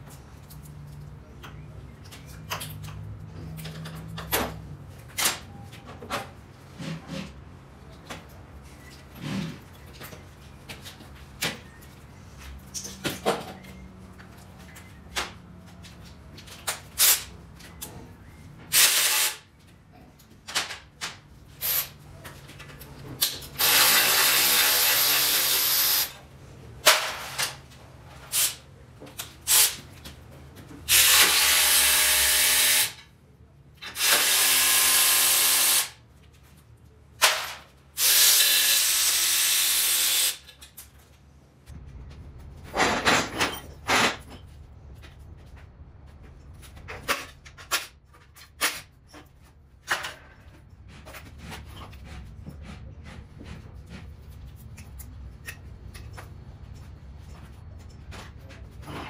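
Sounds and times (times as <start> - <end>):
metal parts clanking: 42.6 - 44.6.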